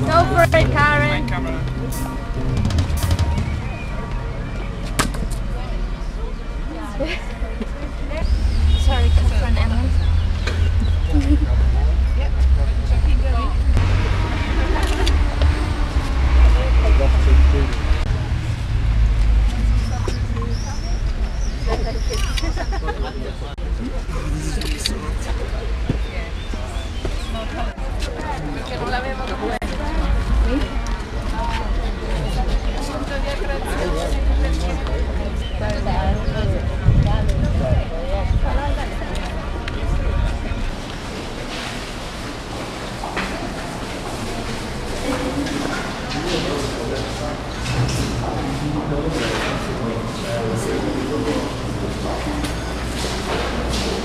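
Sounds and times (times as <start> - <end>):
low rumble: 0.0 - 6.6, 8.2 - 22.4
faint voices talking: 0.0 - 54.0
wind rumbling on microphone: 35.2 - 43.0.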